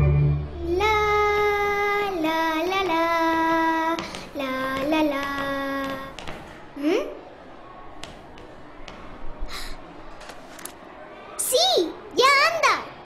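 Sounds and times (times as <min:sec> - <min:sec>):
child singing long notes: 0:00.0 - 0:06.1.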